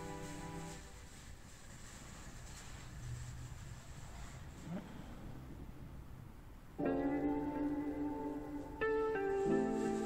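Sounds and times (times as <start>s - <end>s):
faint room noise: 0.0s - 10.0s
held music chord: 6.8s - 10.0s.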